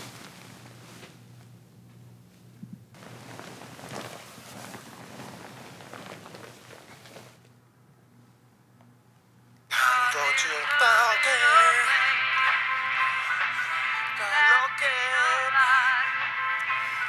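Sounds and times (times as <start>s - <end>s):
faint rustling: 0.0s - 7.5s
man singing with music: 9.7s - 17.0s.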